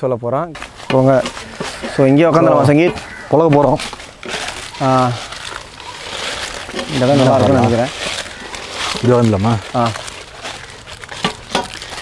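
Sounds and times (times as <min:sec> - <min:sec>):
crinkly rustling: 0:00.6 - 0:12.0
man speaking: 0:01.9 - 0:03.8, 0:06.8 - 0:08.0, 0:09.0 - 0:10.0.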